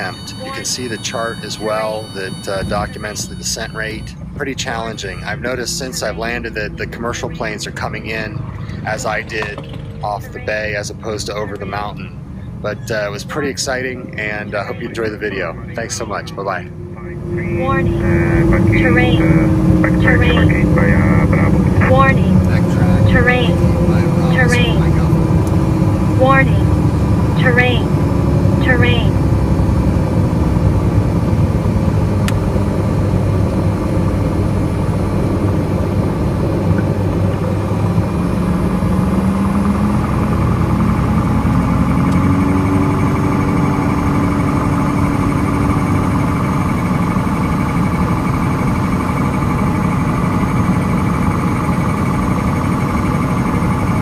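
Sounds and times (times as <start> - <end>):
airplane engine and propeller: 0.0 - 54.0.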